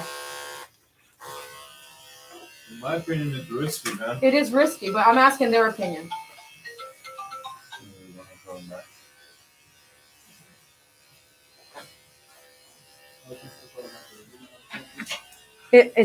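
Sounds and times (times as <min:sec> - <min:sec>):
electric clippers humming: 0:00.0 - 0:16.0
tune of stepped notes: 0:04.8 - 0:08.5.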